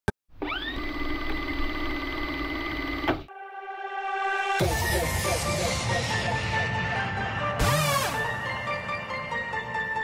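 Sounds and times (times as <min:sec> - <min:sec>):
machine-like whine rising in pitch: 0:00.5 - 0:08.9.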